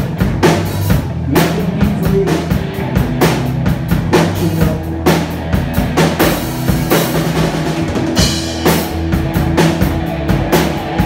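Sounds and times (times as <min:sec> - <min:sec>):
drum kit kick and snare: 0:00.0 - 0:11.0
electric bass line: 0:00.0 - 0:11.0
electric guitar: 0:00.0 - 0:11.0.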